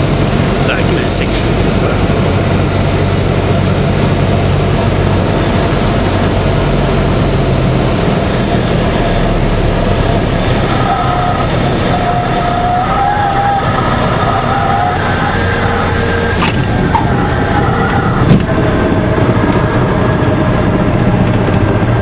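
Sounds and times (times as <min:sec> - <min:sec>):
faint wavering whine: 0:00.0 - 0:22.0
propeller aircraft engine: 0:00.0 - 0:22.0.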